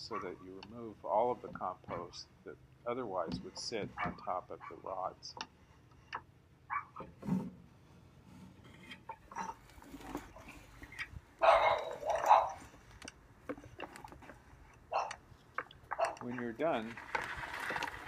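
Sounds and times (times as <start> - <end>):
dog barking: 4.0 - 4.8, 6.7 - 7.0, 11.4 - 12.6, 14.9 - 15.2
rake scraping over steel rods: 7.0 - 18.0.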